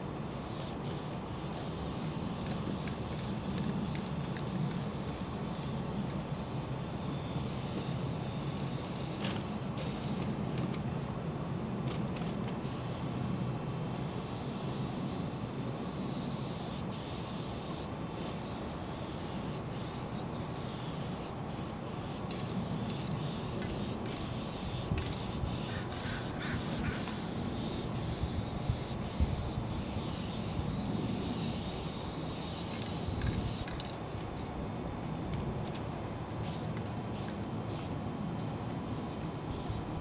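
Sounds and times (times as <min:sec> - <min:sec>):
spray paint can hissing: 0:00.4 - 0:06.5, 0:07.8 - 0:10.5, 0:12.6 - 0:15.4, 0:16.2 - 0:34.0, 0:36.4 - 0:39.8.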